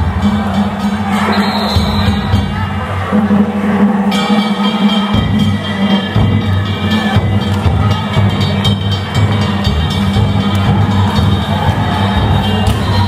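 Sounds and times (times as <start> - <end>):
high held tones: 0.0 - 3.2.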